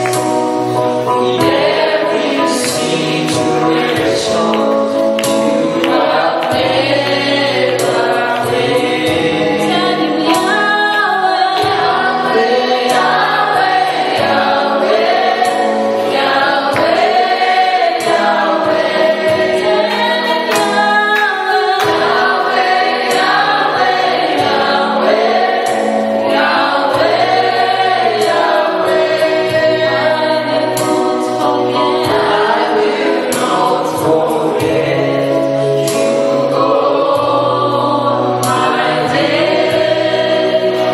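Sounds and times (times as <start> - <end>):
choir singing in harmony: 0.0 - 40.9
instrumental accompaniment: 0.0 - 40.9.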